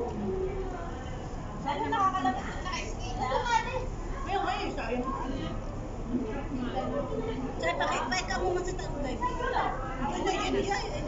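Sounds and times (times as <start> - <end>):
women chattering: 0.2 - 11.0.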